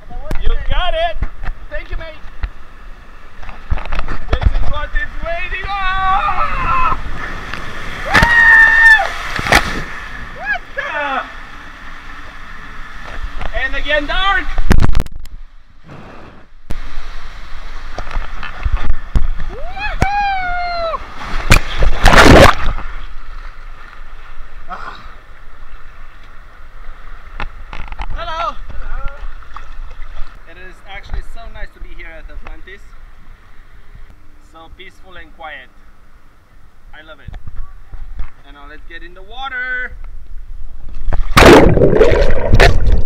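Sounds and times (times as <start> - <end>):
water rushing: 0.9 - 15.0, 15.8 - 27.9, 41.1 - 43.0
tube sliding in rushing water: 4.5 - 14.5, 41.1 - 43.0
person yelling: 5.5 - 7.0, 8.0 - 9.1, 10.4 - 11.3, 19.5 - 21.0
big splash: 6.2 - 10.4, 20.9 - 23.0, 41.1 - 43.0.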